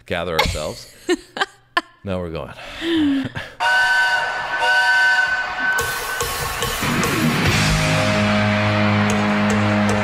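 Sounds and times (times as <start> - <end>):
person laughing: 0.4 - 2.0
whistle-like held chord: 3.6 - 7.3
crowd noise: 4.2 - 10.0.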